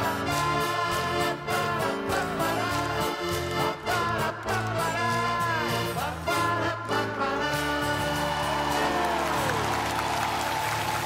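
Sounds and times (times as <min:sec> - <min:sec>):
accordions and guitar playing: 0:00.0 - 0:10.7
audience applause: 0:08.4 - 0:11.0.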